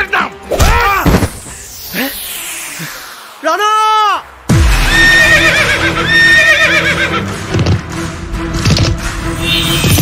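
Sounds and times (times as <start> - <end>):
heavy low boom: 4.4 - 5.2
horse whinnying: 5.1 - 7.2.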